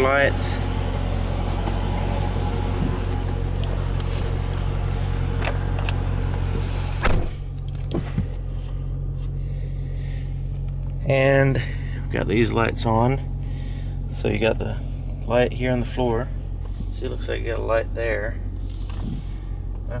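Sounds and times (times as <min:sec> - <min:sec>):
car engine idling: 0:00.0 - 0:20.0
car door shutting: 0:02.6 - 0:08.8.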